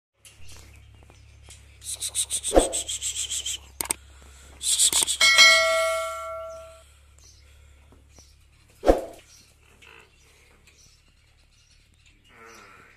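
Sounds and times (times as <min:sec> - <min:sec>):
fast run of clicks: 0:01.4 - 0:04.0, 0:04.6 - 0:05.3
bell ding: 0:05.2 - 0:06.8.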